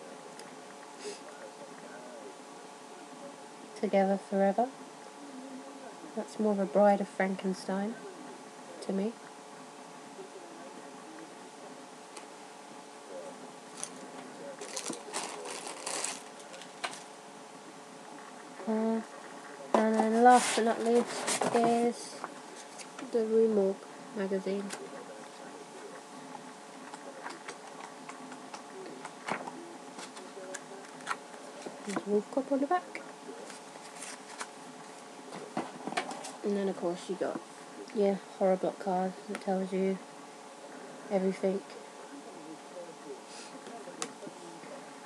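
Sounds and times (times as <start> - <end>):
faint steady background hum: 0.0 - 45.0
low room hiss: 0.0 - 45.0
paper rustling: 14.6 - 17.1, 33.4 - 34.6.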